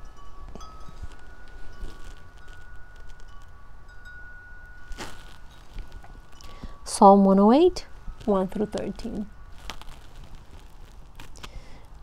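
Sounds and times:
wind chimes ringing: 0:00.0 - 0:10.9
low rumble of wind: 0:00.0 - 0:12.0.

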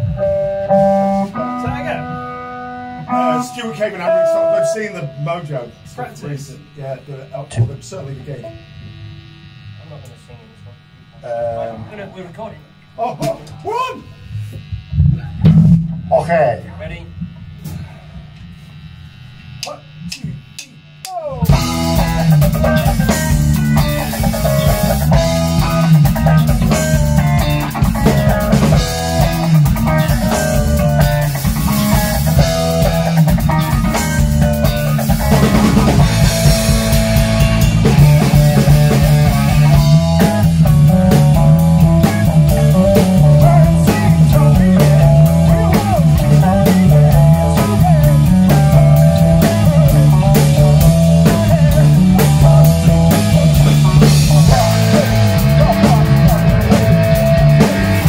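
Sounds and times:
rock band playing: 0:00.0 - 0:06.8, 0:15.0 - 0:18.3, 0:21.4 - 0:58.0.

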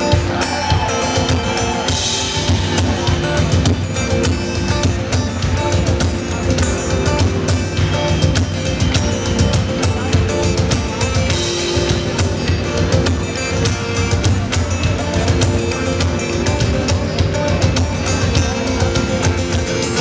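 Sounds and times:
drum kit beat: 0:00.0 - 0:20.0
guitar: 0:00.0 - 0:20.0
live pop band: 0:00.0 - 0:20.0.

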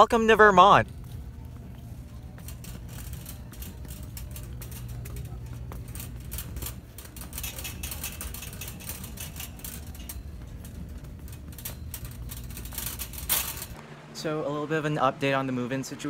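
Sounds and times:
steady low rumble: 0:00.0 - 0:15.5
shopping cart rattling: 0:00.2 - 0:13.8.

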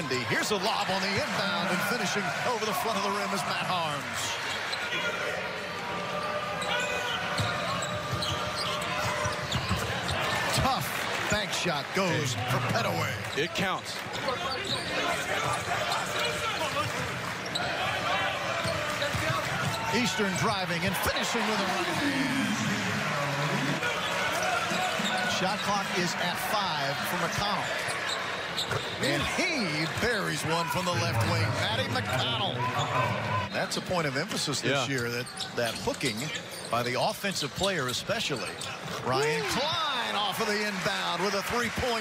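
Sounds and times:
murmur of arena crowd: 0:00.0 - 0:42.0.

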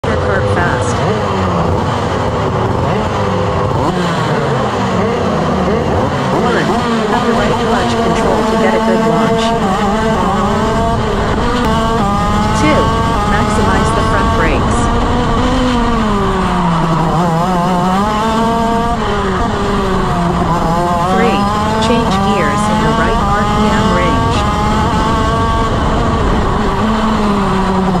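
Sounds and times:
kart engine revving through gears: 0:00.0 - 0:28.0.

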